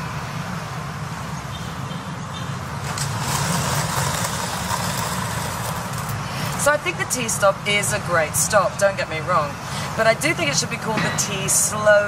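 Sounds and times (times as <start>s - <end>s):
road traffic rumble: 0.0s - 12.0s.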